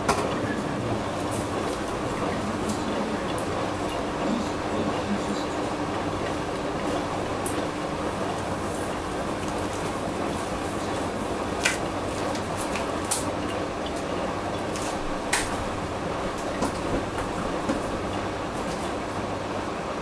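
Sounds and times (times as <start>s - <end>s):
washing machine drum tumbling: 0.0s - 20.0s.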